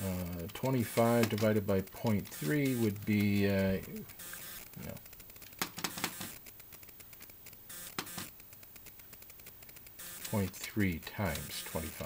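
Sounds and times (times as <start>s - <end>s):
faint clicks: 0.0s - 12.0s.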